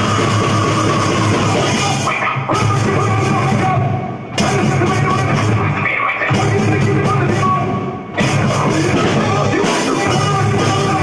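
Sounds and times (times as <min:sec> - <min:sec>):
heavy metal backing track: 0:00.0 - 0:11.0
rock drum kit played hard: 0:00.0 - 0:11.0.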